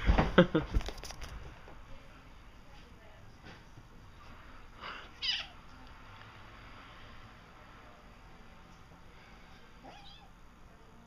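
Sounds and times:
kitten meowing: 0:05.2 - 0:05.6.

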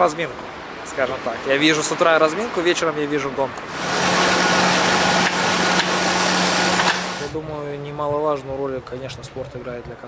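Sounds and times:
bike wheel whirring on trainer: 0:03.7 - 0:07.3.

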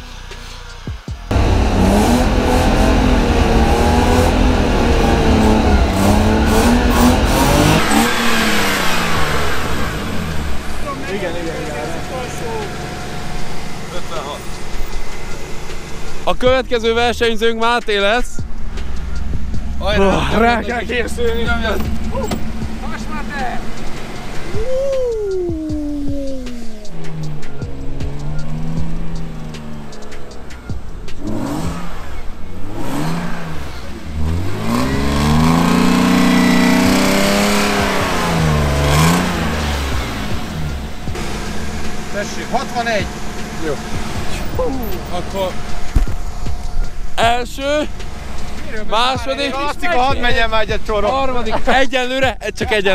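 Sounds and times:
car engine revving: 0:00.0 - 0:52.9.

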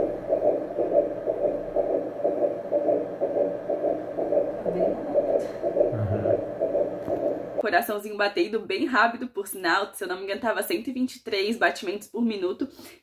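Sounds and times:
doppler heartbeat pulse: 0:00.0 - 0:07.6.

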